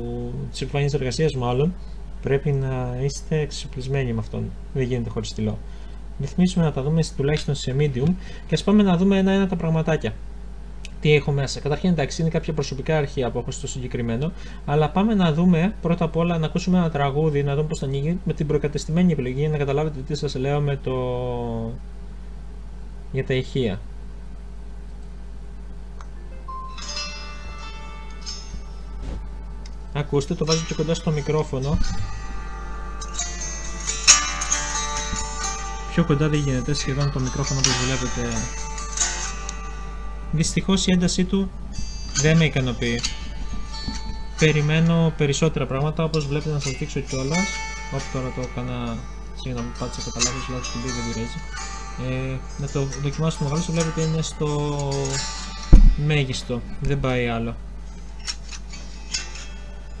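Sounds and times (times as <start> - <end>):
song through weak tablet speakers: 26.0 - 56.0, 57.9 - 60.0.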